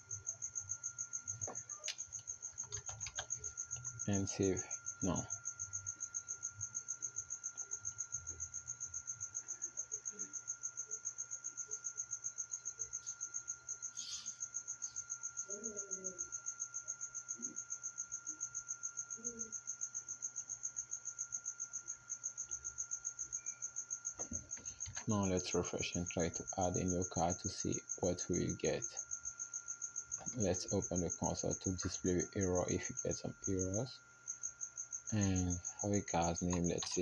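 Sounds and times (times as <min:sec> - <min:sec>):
cricket chirping: 0:00.0 - 0:37.0
faint low hum: 0:00.0 - 0:37.0.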